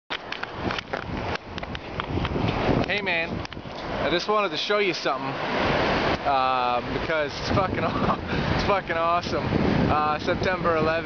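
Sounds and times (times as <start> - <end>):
camera handling knocks and rustles: 0.1 - 2.6.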